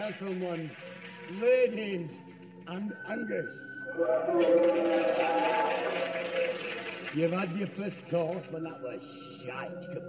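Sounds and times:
crowd chanting and shouting: 3.9 - 7.1.

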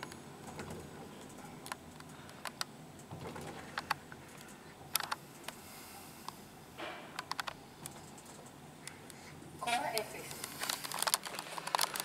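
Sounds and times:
faint steady background noise: 0.0 - 12.0.

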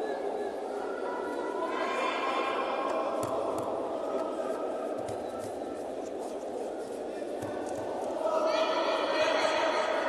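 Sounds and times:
crowd chatter in echoing hall: 0.0 - 10.0.

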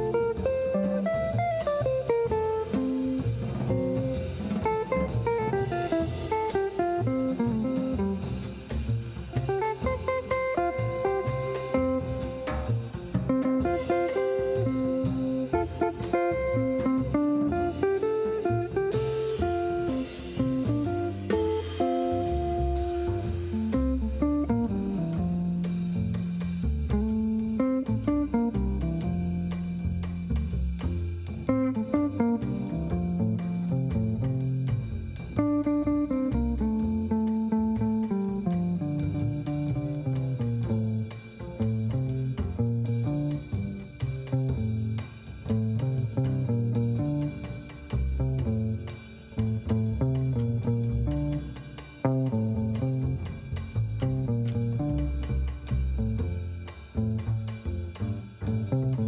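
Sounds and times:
drum kit: 0.0 - 59.0
electric guitar melody: 0.0 - 59.0
plucked double bass: 0.0 - 59.0.

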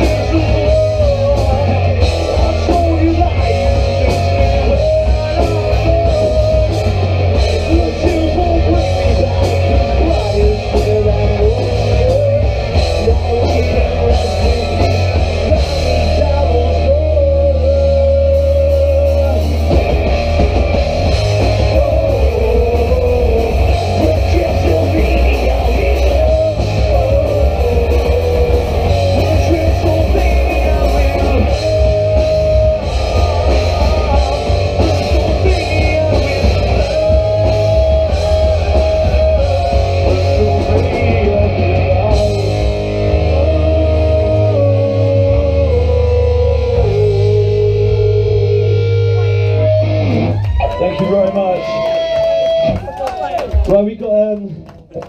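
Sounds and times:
drum kit playing: 0.0 - 50.3
ringing guitar chords: 0.0 - 52.8
live punk rock band: 0.0 - 55.0.

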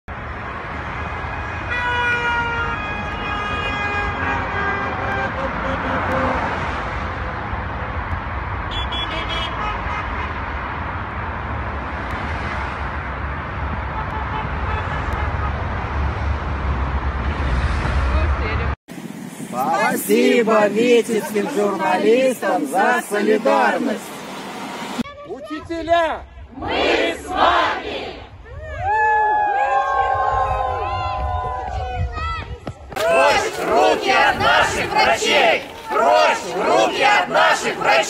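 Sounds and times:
road traffic passing: 0.1 - 25.1, 26.2 - 28.4, 32.7 - 38.0
car horn blast: 8.7 - 10.4.

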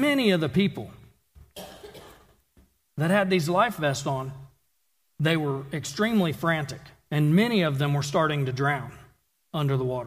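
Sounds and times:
person coughing quietly: 1.5 - 2.4.

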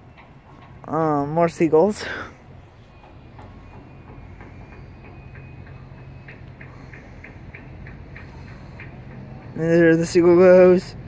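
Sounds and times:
regular ticking: 0.0 - 11.0.

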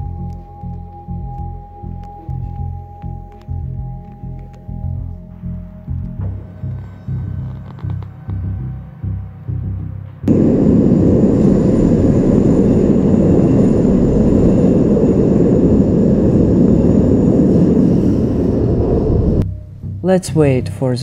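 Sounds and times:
train rumbling in tunnel: 10.3 - 19.4.

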